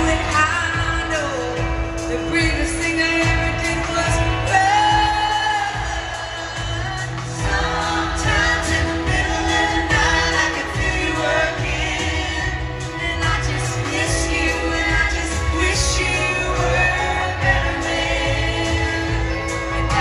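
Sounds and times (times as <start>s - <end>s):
live country band playing: 0.0s - 20.0s
woman singing lead vocals: 0.0s - 20.0s.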